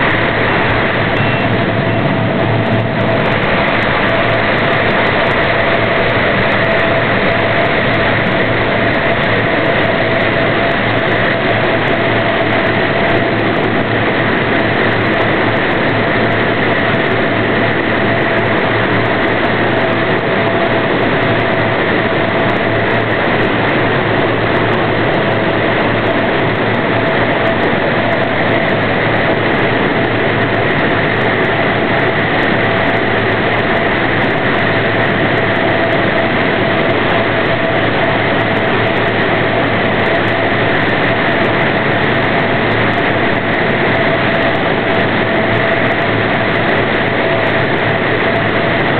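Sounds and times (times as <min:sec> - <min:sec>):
plane turbine whine: 0:00.0 - 0:48.9.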